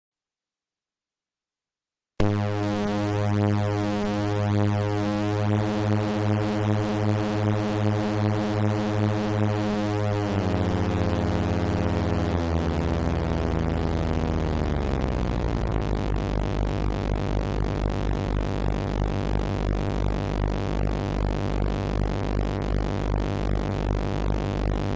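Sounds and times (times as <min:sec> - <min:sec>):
synthesizer drone: 0:02.2 - 0:22.1.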